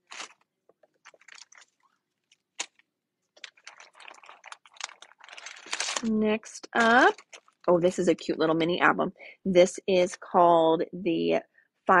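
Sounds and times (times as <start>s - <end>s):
plastic crinkling and light clicks: 0.0s - 7.7s.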